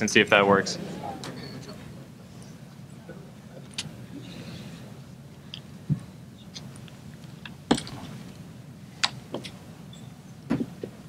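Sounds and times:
low hum: 0:00.0 - 0:08.8.

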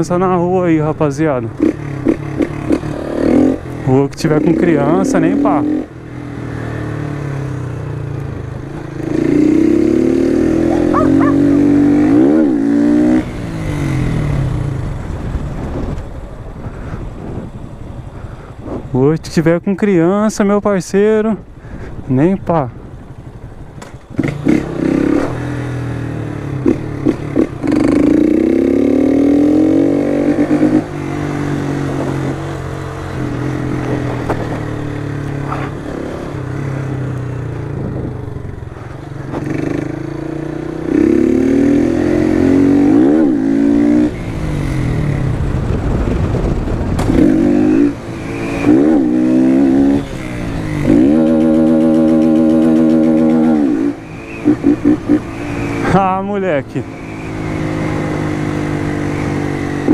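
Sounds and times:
motorcycle engine revving: 0:01.5 - 0:16.0, 0:24.0 - 0:59.9.

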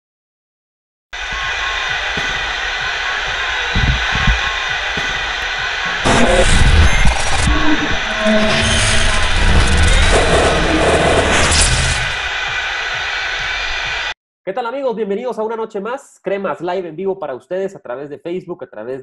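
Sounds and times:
dense rushing noise: 0:01.2 - 0:14.2
low thuds: 0:01.4 - 0:08.1.

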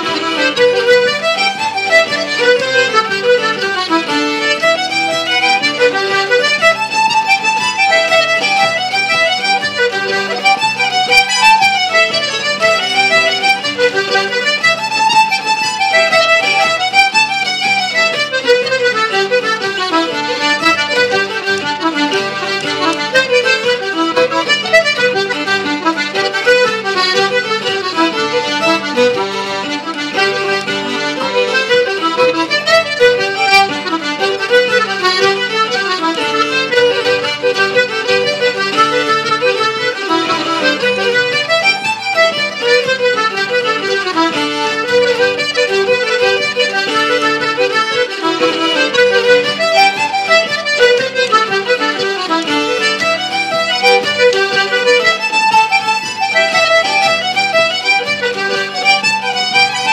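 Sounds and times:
button accordion: 0:00.0 - 0:59.9
fiddle: 0:00.0 - 0:59.9.

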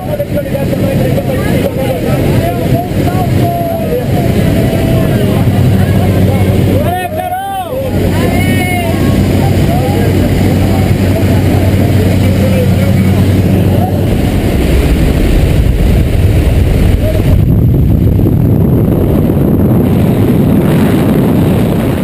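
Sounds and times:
light aircraft engine droning: 0:00.0 - 0:22.0
wind rushing: 0:07.8 - 0:22.0.

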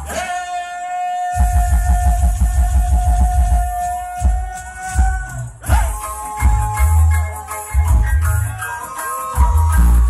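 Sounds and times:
reggae sound system music: 0:00.0 - 0:10.0
fast throbbing bass: 0:01.4 - 0:04.4.

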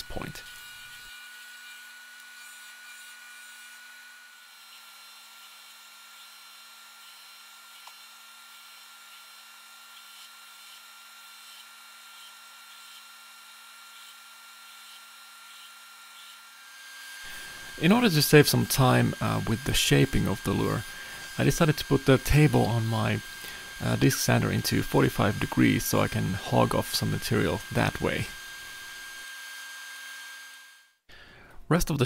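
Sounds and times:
wood sanding: 0:00.0 - 0:29.3
belt sander motor whine: 0:00.0 - 0:31.0.

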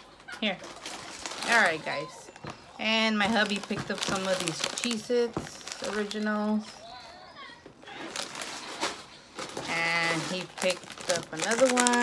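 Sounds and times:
plastic snack bag crinkling: 0:00.0 - 0:07.2, 0:07.8 - 0:12.0.

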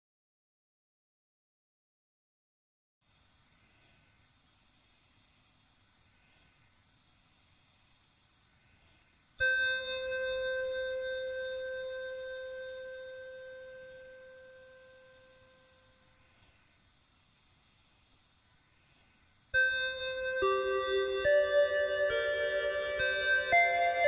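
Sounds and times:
faint hiss: 0:03.0 - 0:24.0
electronic keyboard note: 0:09.4 - 0:16.1, 0:19.6 - 0:24.0.

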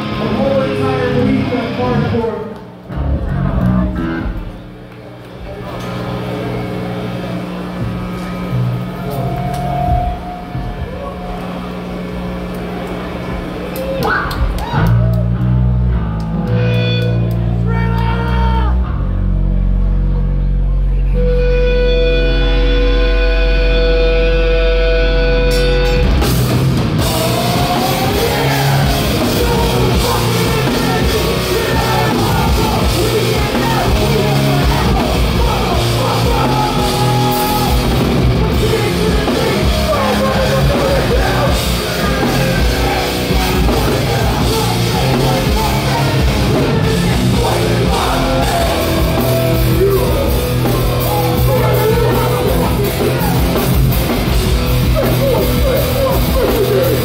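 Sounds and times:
punk band playing live: 0:00.0 - 0:04.8, 0:05.5 - 0:57.0
held bass and guitar notes: 0:00.0 - 0:57.0.

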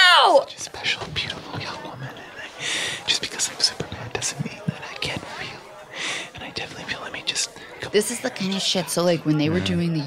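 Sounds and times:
man whispering: 0:00.4 - 0:08.0.

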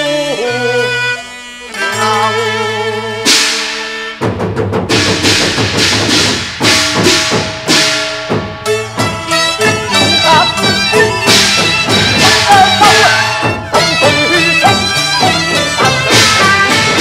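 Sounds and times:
instrumental opera melody: 0:00.0 - 0:04.2, 0:08.9 - 0:17.0
loud cymbal crash: 0:03.2 - 0:13.6
gong and cymbal strikes: 0:04.9 - 0:13.6.

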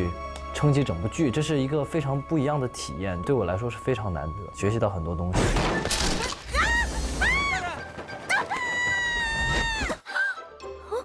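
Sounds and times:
woman screaming: 0:06.2 - 0:10.4.

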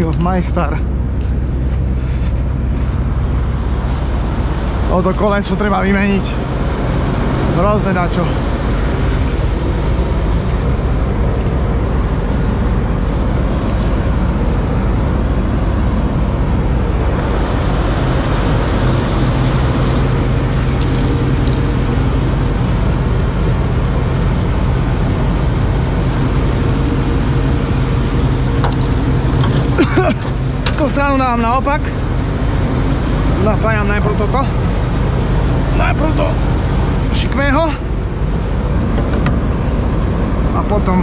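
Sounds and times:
combine harvester engine running: 0:00.0 - 0:41.0.

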